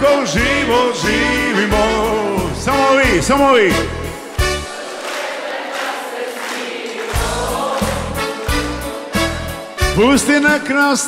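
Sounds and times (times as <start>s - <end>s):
live pop band playing: 0.0s - 4.7s.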